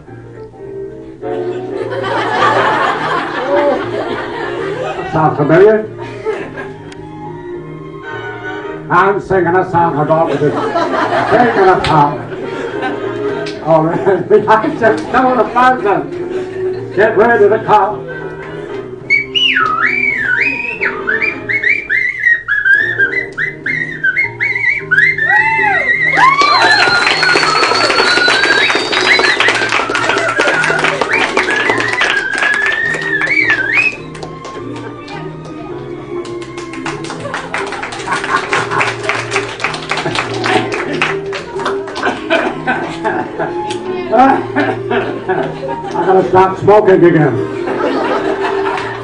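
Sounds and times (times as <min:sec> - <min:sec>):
backing music with steady beat: 0:00.0 - 0:49.0
man whistling a melody: 0:19.1 - 0:34.2.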